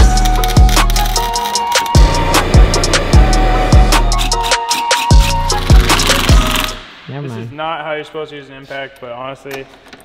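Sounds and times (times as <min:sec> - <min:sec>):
music with deep sliding bass: 0:00.0 - 0:06.8
man talking: 0:07.1 - 0:09.7.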